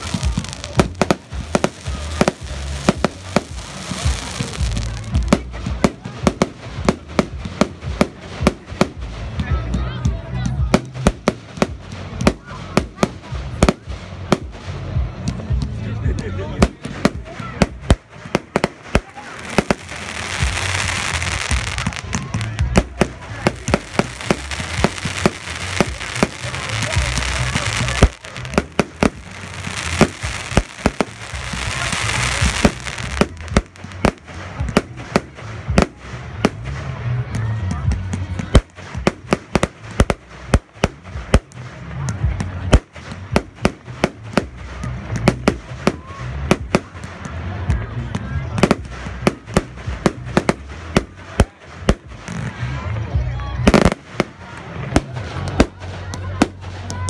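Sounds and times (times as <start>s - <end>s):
fireworks hissing: 0.0s - 9.4s, 16.6s - 37.2s
fireworks bangs: 0.0s - 9.8s, 10.4s - 37.2s, 37.8s - 52.8s, 53.6s - 57.0s.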